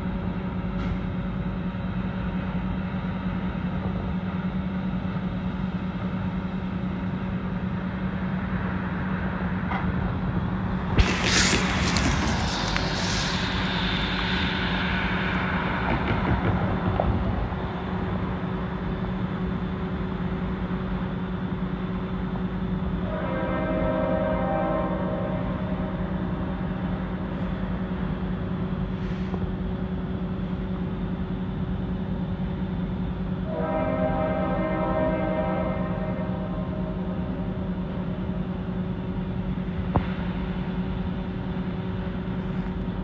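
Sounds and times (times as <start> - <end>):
diesel locomotive rumble: 0.0 - 43.0
hiss: 10.9 - 17.9, 28.9 - 29.5
train horn chord: 23.0 - 26.0, 33.5 - 37.1.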